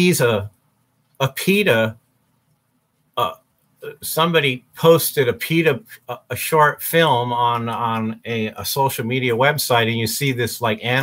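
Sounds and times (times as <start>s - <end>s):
man speaking: 0.0s - 0.6s, 1.2s - 2.0s, 3.2s - 11.0s
faint low room hum: 0.0s - 11.0s
man vocal uh: 3.2s - 4.0s.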